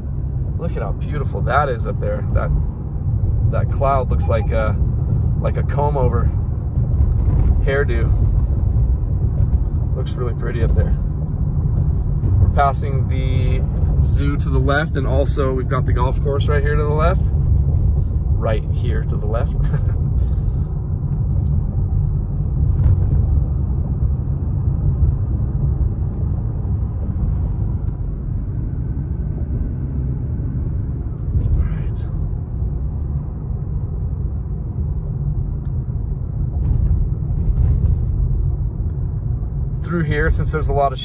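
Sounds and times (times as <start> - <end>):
car driving rumble from inside: 0.0 - 41.0.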